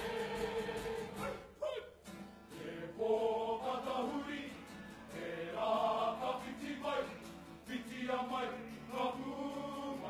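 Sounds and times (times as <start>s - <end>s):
choir singing in harmony: 0.0s - 1.3s, 2.5s - 10.0s.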